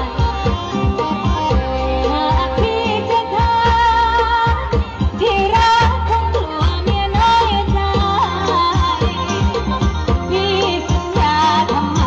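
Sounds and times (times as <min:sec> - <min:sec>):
band playing: 0:00.0 - 0:12.0
steady drum beat: 0:00.0 - 0:12.0
woman singing: 0:00.0 - 0:12.0.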